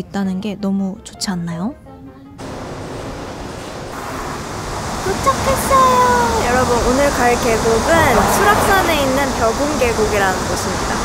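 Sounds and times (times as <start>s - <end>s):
passing road traffic: 2.4s - 11.0s.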